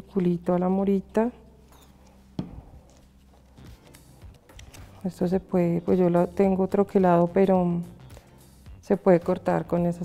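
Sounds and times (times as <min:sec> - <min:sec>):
tap on table: 0:02.4 - 0:02.6.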